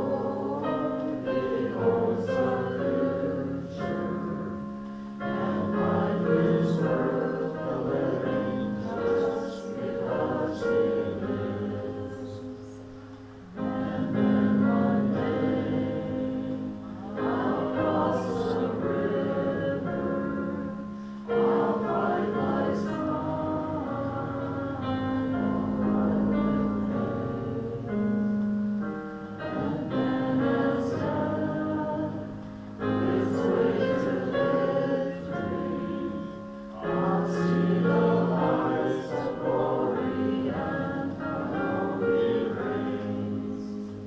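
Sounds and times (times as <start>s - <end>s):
congregation singing a hymn: 0.0s - 44.0s
keyboard accompaniment: 0.0s - 44.0s.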